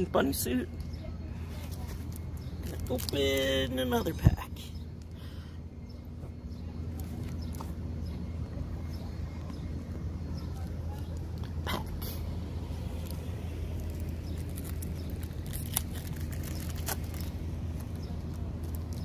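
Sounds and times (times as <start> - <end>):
steady low hum: 0.0 - 19.0
foil pack crinkling: 1.7 - 3.8, 13.0 - 19.0.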